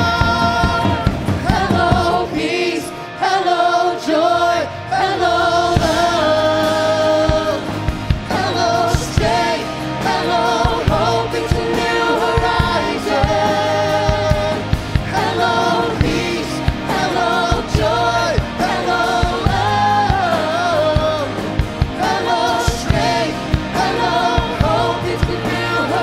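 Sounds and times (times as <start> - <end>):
steady drum beat: 0.0 - 2.8, 5.5 - 26.0
man singing lead vocals: 0.0 - 2.9, 3.5 - 26.0
backing singers: 0.0 - 26.0
bass: 0.0 - 26.0
guitars: 0.0 - 26.0
keyboard: 0.0 - 26.0.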